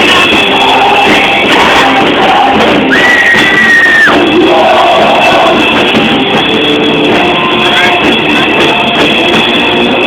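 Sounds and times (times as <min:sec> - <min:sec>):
distorted rock band playing: 0:00.0 - 0:10.0.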